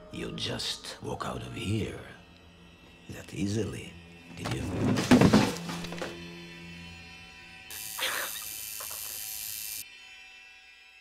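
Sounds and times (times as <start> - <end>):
film score music: 0.0 - 8.6
body slammed onto table: 4.7 - 6.1.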